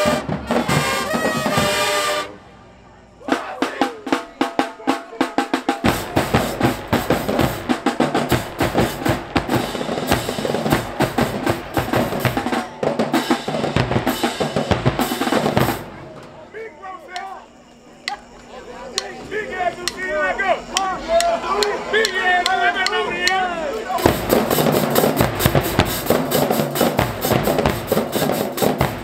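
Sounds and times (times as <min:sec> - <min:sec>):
marching drumline cadence: 0:00.0 - 0:29.0
voices: 0:00.0 - 0:29.0.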